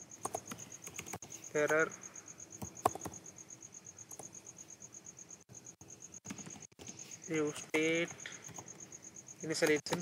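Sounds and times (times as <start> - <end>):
keyboard typing: 0.2 - 1.9, 2.6 - 3.3, 4.0 - 4.4, 6.2 - 7.1, 7.8 - 8.8.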